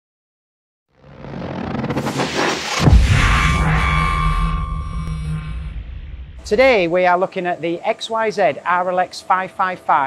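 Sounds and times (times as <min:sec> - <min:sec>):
low rumble: 0:01.0 - 0:07.0.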